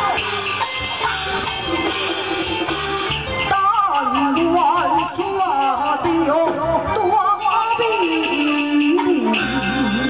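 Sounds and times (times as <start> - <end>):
amplified instrumental accompaniment: 0.0 - 10.0
person singing through microphone: 3.3 - 10.0.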